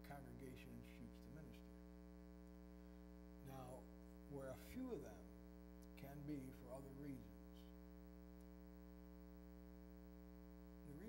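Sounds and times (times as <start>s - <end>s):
man speaking quietly: 0.0s - 1.7s, 6.0s - 7.6s
electrical mains hum: 0.0s - 11.0s.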